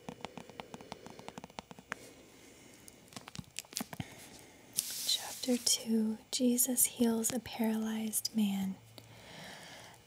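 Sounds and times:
woman speaking softly: 0:05.1 - 0:08.8
woman breathing in: 0:09.0 - 0:10.0.

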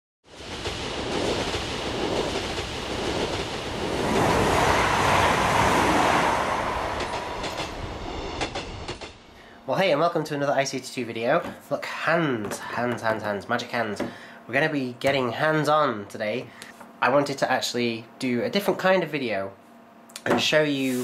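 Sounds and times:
sharp clicks of train: 0:00.3 - 0:09.4
train passing by: 0:00.3 - 0:10.0.

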